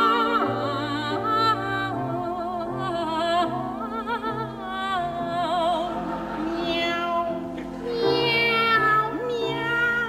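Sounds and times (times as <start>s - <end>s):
operatic sopranos singing: 0.0s - 10.0s
piano accompaniment: 0.0s - 10.0s.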